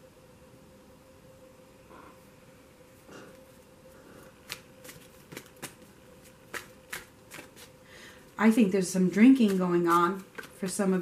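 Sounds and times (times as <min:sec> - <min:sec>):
card rustle: 0:04.4 - 0:07.7.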